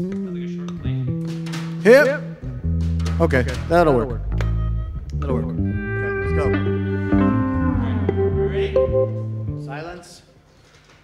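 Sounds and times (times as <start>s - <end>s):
electric bass guitar notes: 0.0s - 9.9s.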